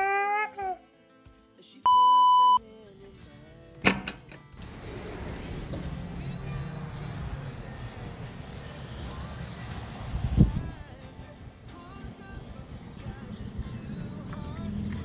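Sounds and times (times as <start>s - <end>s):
man shouting: 0.0s - 0.8s
electronic beep: 1.9s - 2.6s
sliding door click: 3.9s - 6.2s
outdoor rushing noise: 4.6s - 15.0s.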